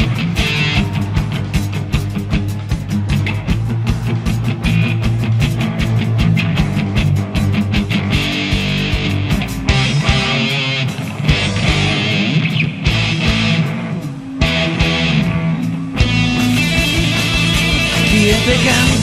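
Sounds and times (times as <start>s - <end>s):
electric guitar: 0.0s - 19.0s
live rock band playing: 0.0s - 19.0s.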